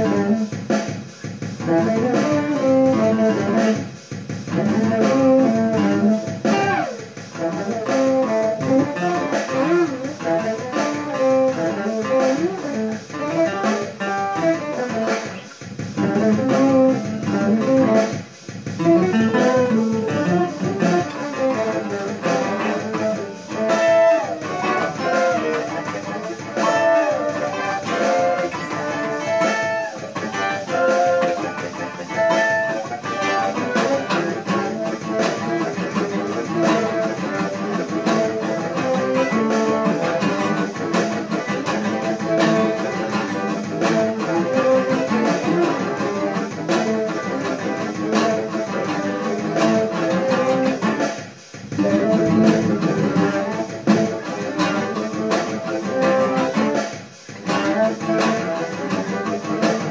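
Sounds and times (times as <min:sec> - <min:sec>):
acoustic guitar jazz piece: 0:00.0 - 0:59.9.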